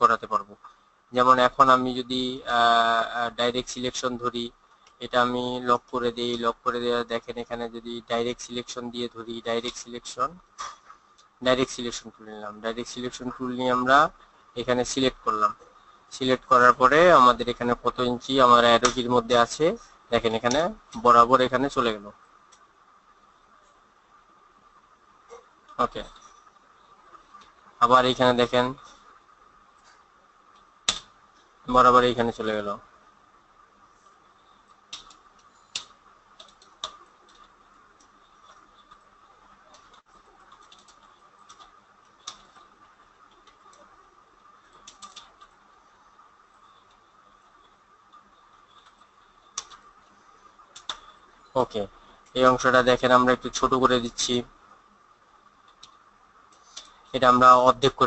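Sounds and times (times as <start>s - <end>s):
background hiss: 0.0s - 58.0s
man speaking in sing-song way: 1.2s - 10.4s
computer mouse click: 34.7s - 39.0s, 48.7s - 49.8s, 50.7s - 51.1s.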